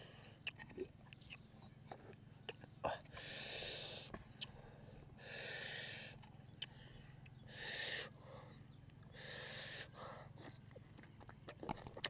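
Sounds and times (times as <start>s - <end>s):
man breathing noisily: 2.8s - 10.7s.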